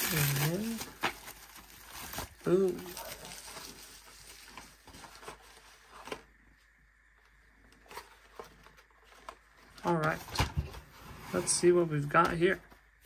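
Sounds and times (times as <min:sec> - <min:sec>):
bubble wrap rustling and crinkling: 0:00.0 - 0:06.4.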